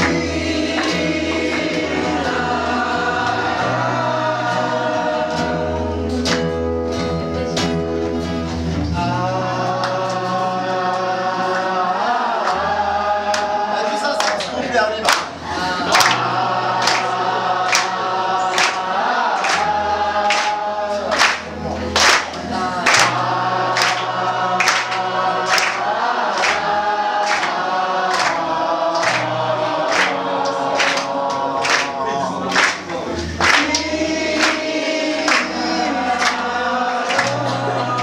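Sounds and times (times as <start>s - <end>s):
group singing in harmony: 0.0s - 7.1s, 8.6s - 38.0s
acoustic guitar: 0.0s - 38.0s.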